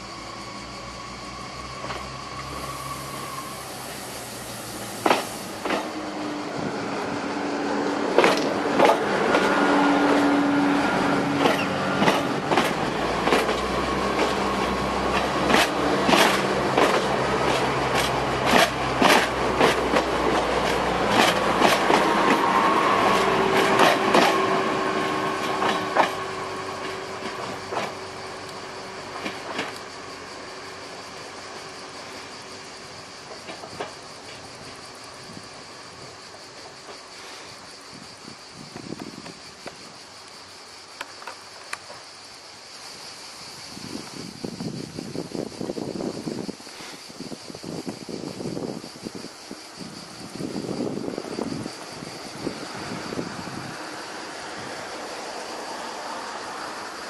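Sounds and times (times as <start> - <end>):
diesel railcar passing: 0.0 - 57.0
train wheels clicking over track: 1.6 - 37.9.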